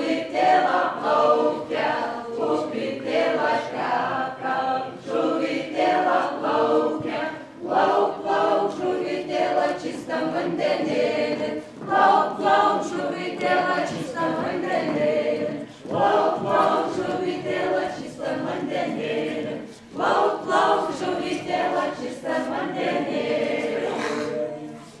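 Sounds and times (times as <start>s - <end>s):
group singing unaccompanied: 0.0s - 25.0s.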